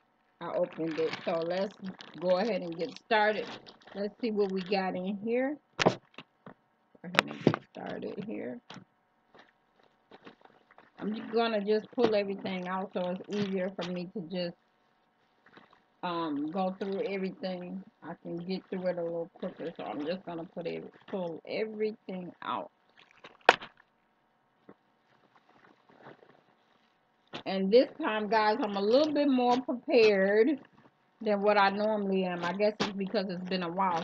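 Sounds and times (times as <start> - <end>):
faint rustling: 0.0 - 21.6, 22.2 - 34.0
packages rustling in a bag: 0.7 - 4.7.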